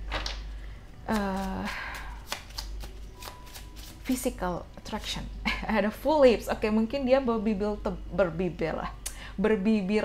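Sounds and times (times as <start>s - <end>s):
cards being shuffled: 1.1s - 4.3s.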